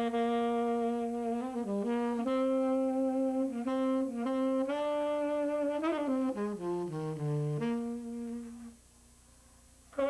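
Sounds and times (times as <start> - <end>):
tenor saxophone note: 0.0 - 8.8.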